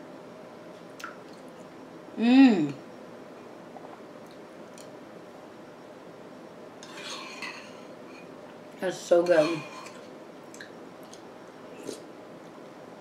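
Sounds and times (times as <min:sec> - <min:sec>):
spoon scraping ceramic bowl: 0:09.2 - 0:10.0.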